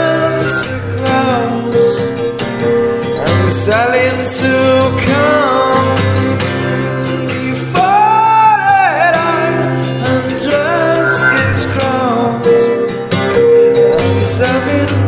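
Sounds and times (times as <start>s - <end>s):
person singing: 0.0s - 2.4s, 3.1s - 15.0s
acoustic guitar playing: 0.0s - 15.0s.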